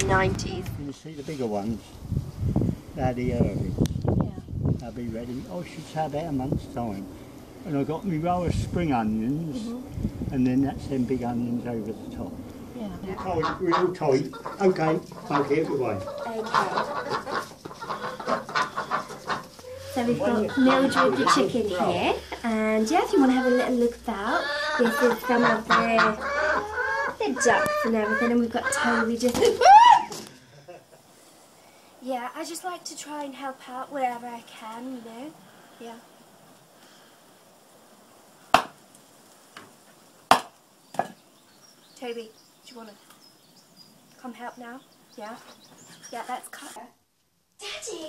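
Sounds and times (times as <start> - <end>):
hen clucking: 12.8 - 29.6
axe chopping wood: 38.5 - 38.8, 40.3 - 41.2.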